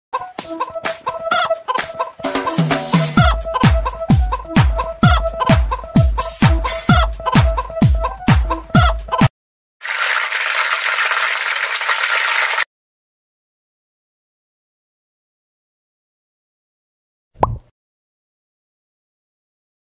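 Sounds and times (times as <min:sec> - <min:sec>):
hen clucking: 0:00.5 - 0:09.3
music with heavy bass kick: 0:02.2 - 0:08.6.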